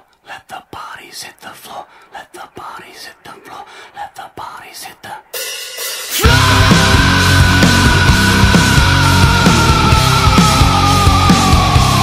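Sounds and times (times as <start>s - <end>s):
person whispering: 0.0s - 5.4s.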